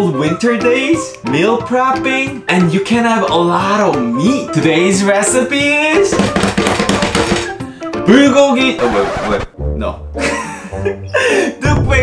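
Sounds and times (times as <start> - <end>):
music with rapid drum roll: 6.1 - 7.6.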